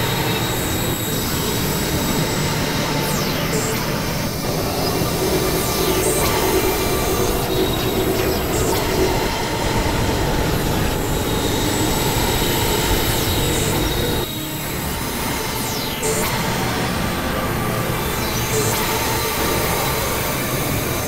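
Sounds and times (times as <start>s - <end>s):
grinding synthesizer noise: 0.0s - 21.0s.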